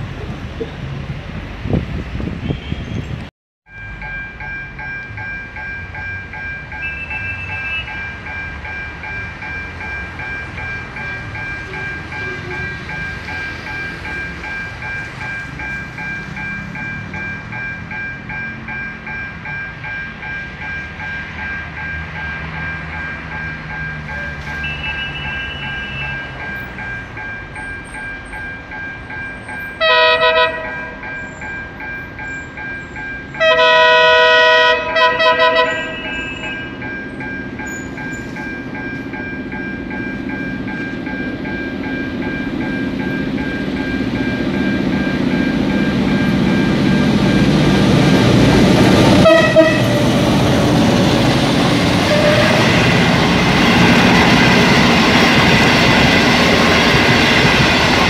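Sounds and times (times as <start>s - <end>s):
train low rumble: 0.0s - 58.0s
pulsing high tone: 3.7s - 33.4s, 35.1s - 58.0s
train horn blasts: 11.6s - 12.8s, 24.6s - 26.4s, 29.8s - 31.0s, 33.4s - 36.7s, 49.1s - 50.4s, 52.0s - 53.1s.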